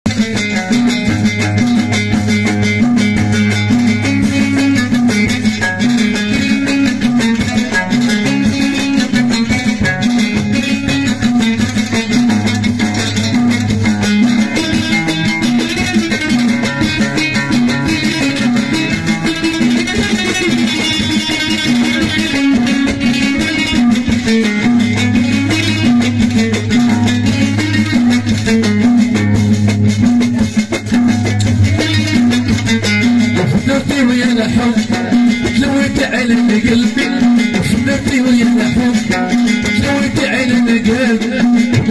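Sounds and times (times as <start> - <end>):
lute fast plucking: 0.0 - 41.9.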